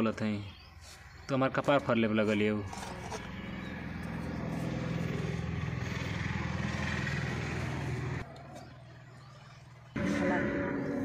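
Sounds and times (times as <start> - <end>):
motor engine running: 2.8 - 11.0.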